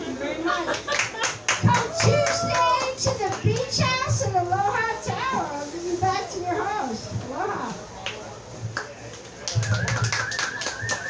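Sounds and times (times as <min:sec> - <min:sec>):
voices: 0:00.0 - 0:11.0
audience clapping: 0:00.7 - 0:03.7, 0:08.8 - 0:11.0.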